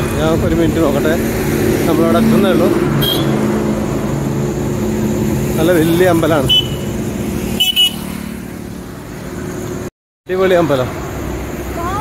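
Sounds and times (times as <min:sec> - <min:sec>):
roadside traffic: 0:00.0 - 0:12.0
vehicle engine humming: 0:00.0 - 0:12.0.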